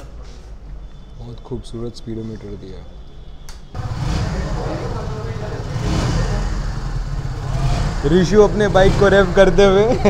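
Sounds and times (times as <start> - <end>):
motorcycle engine rumbling: 3.7 - 10.0.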